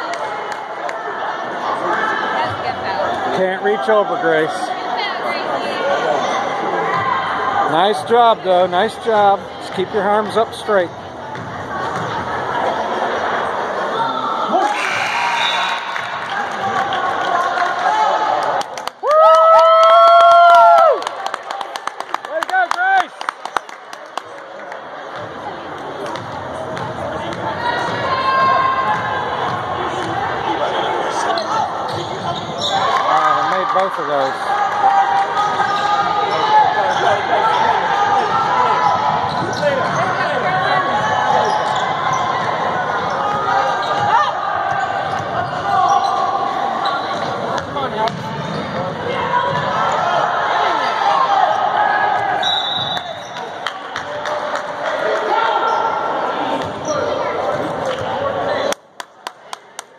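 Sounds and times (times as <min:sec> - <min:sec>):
voices in gym: 0:00.0 - 0:19.9, 0:20.8 - 0:59.9.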